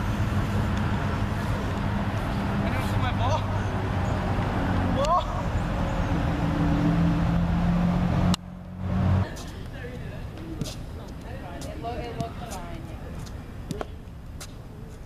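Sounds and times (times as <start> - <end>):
car engines passing: 0.0 - 14.9
outdoor background noise: 0.0 - 15.0.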